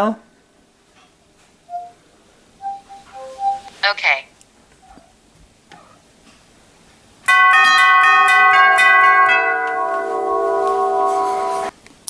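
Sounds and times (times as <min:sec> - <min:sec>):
electronic beeping melody: 0:01.7 - 0:02.0, 0:02.6 - 0:03.8.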